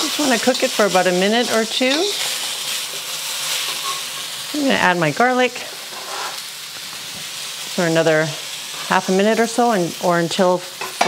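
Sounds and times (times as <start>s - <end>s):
onions sizzling in hot oil: 0.0s - 11.0s.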